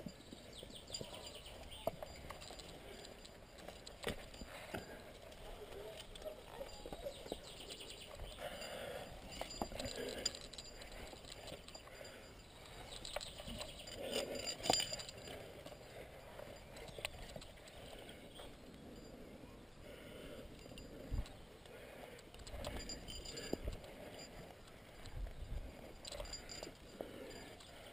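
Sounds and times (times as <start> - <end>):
carabiners clinking: 0.0 - 27.9.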